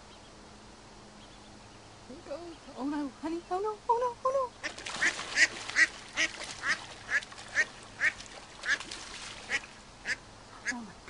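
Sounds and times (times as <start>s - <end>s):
ducks calling in alarm: 4.4s - 10.9s.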